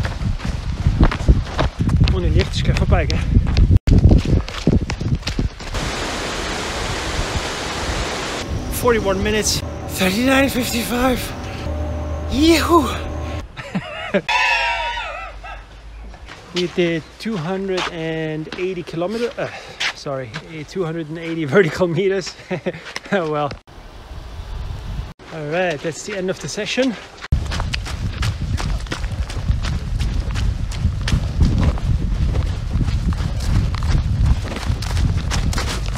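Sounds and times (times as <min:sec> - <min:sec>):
wind buffeting microphone: 0:00.0 - 0:12.3, 0:27.4 - 0:35.9
man cheering: 0:12.3 - 0:13.4
man laughing high-pitched: 0:12.5 - 0:15.0
footsteps ticking: 0:16.1 - 0:23.4.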